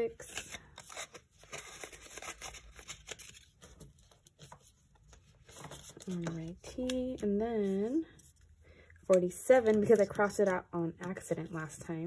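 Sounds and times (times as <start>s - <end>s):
paper rustling and crinkling: 0.0s - 8.3s.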